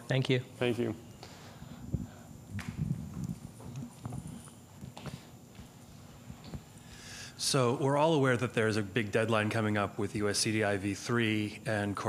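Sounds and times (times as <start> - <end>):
microphone handling noise: 1.6 - 6.8.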